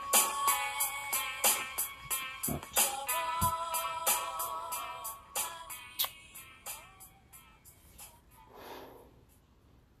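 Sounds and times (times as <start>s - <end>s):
short breath: 8.5s - 9.2s.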